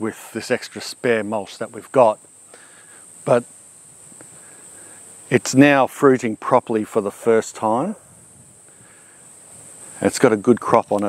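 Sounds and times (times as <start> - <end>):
high-pitched insect drone: 0.0 - 11.0
wind noise: 8.0 - 11.0.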